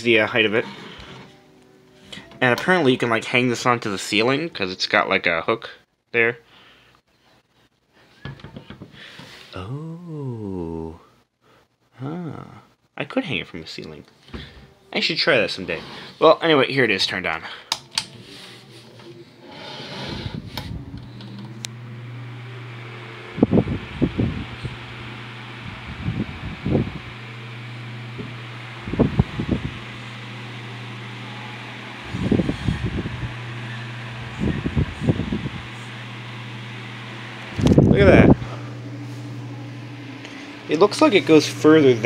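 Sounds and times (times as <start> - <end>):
fan motor hum: 0.0 - 4.5, 15.5 - 42.0
air rushing from fan blades: 31.9 - 42.0.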